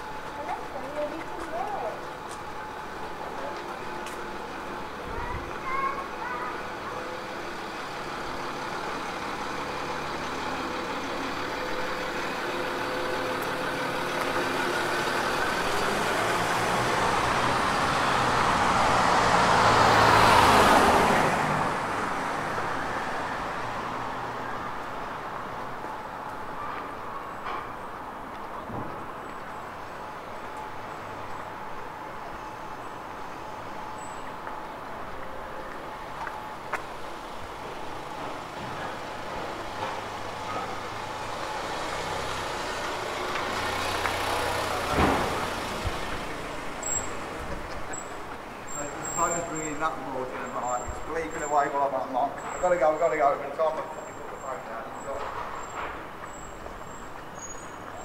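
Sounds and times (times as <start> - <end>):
traffic hum: 0.0 - 58.0
vehicle passing by: 7.4 - 25.8, 37.3 - 53.2.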